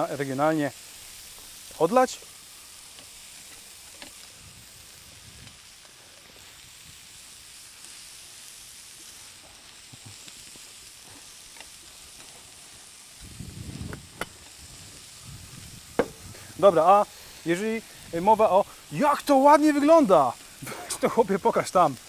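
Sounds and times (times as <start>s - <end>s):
vegetables sizzling in a frying pan: 0.0s - 22.0s.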